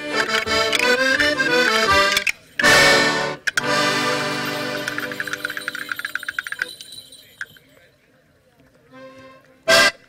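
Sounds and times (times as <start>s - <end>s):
accordion chord: 0.0s - 6.0s, 8.9s - 10.0s.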